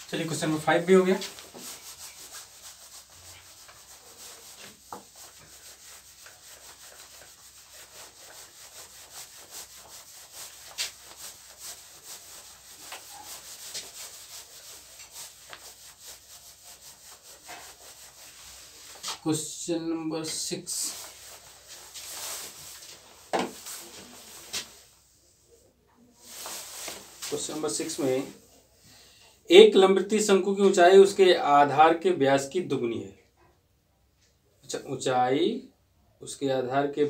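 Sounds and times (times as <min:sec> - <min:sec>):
duster scrubbing a whiteboard: 0:00.0 - 0:19.3, 0:20.2 - 0:25.0, 0:26.2 - 0:28.5.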